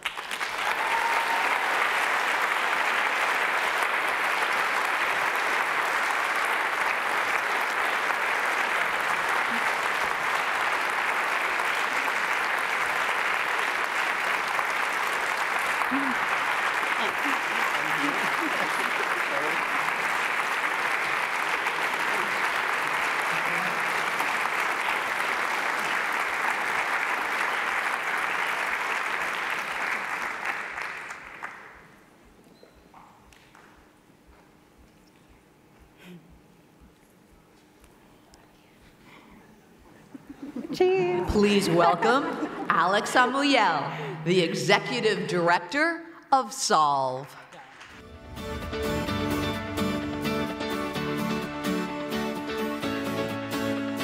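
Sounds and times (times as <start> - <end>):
audience applauding: 0.0 - 32.0, 47.3 - 50.1.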